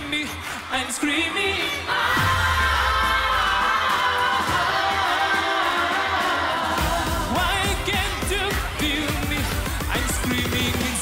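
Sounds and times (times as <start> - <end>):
man singing: 0.0 - 1.9, 3.7 - 11.0
band playing: 2.0 - 11.0
steady drum beat: 2.1 - 11.0.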